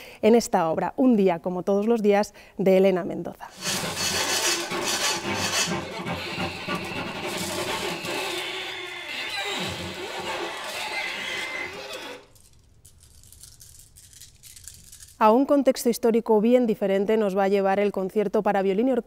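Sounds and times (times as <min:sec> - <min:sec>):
kitchen objects rattling and clinking: 0:11.8 - 0:15.2.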